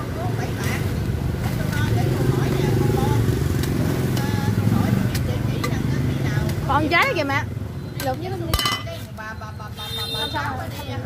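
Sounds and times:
motorcycle passing: 0:00.2 - 0:09.2.

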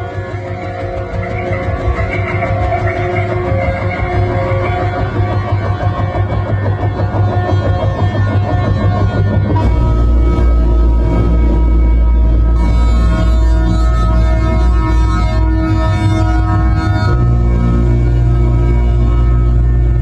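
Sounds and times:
fast-pulsing synth layer: 0:00.0 - 0:20.0
low drone: 0:00.0 - 0:20.0
synth bass: 0:00.0 - 0:20.0
synthesizer tones: 0:00.0 - 0:20.0.

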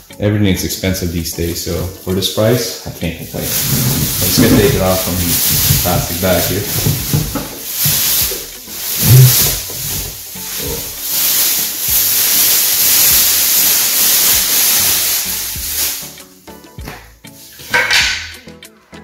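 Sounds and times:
plastic bag crinkling: 0:01.4 - 0:16.2.

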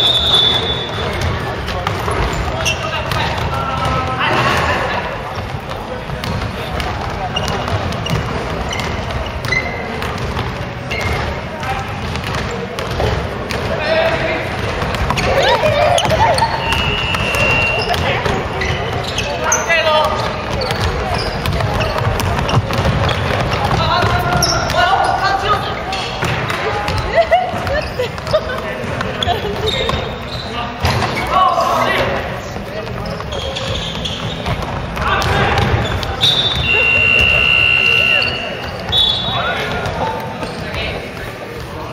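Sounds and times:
feet hitting the court: 0:00.6 - 0:19.4, 0:20.0 - 0:25.2, 0:32.5 - 0:37.3
basketball bouncing on wooden floor: 0:05.3 - 0:13.7, 0:14.6 - 0:19.2, 0:20.0 - 0:24.9, 0:32.8 - 0:36.6.

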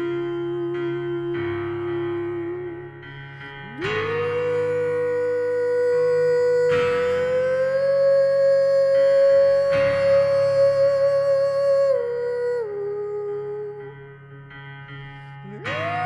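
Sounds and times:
digital piano chords: 0:00.0 - 0:16.0.

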